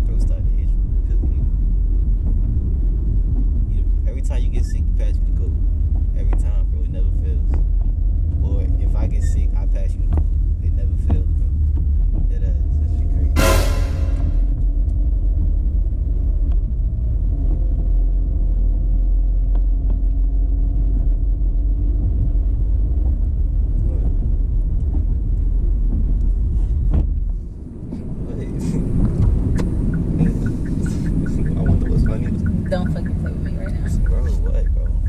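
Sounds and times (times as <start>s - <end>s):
car road and engine rumble: 0.0s - 35.0s.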